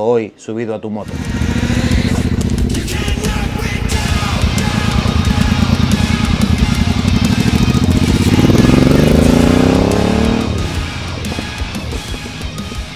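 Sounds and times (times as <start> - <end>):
background music: 0.0 - 12.9
motorcycle engine revving: 1.0 - 12.9.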